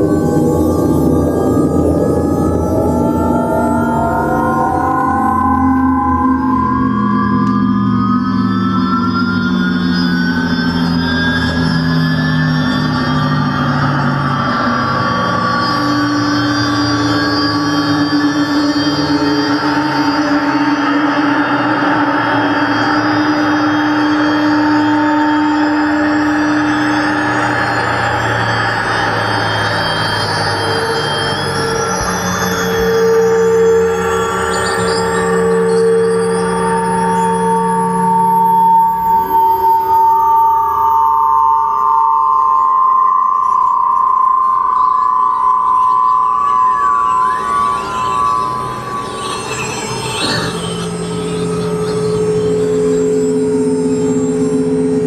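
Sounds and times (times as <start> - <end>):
sustained synthesizer tones: 0.0 - 55.0.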